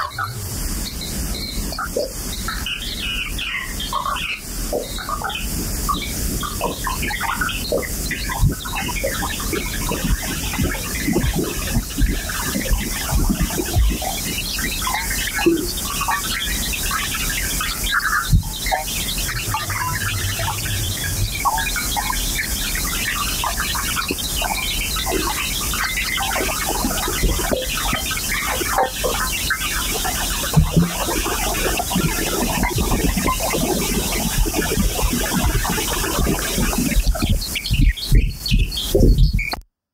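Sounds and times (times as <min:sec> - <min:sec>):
constant hiss: 0:00.0 - 0:38.2
bird-like electronic chirping: 0:00.0 - 0:39.6.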